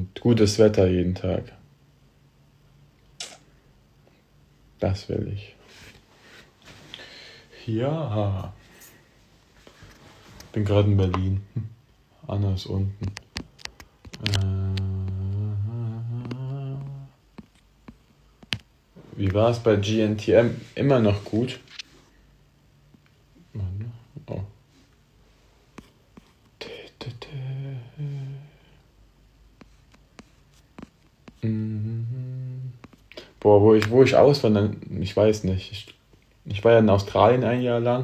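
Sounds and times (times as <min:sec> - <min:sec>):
man humming low note: 0:14.2 - 0:17.2, 0:26.7 - 0:28.6, 0:31.3 - 0:32.9.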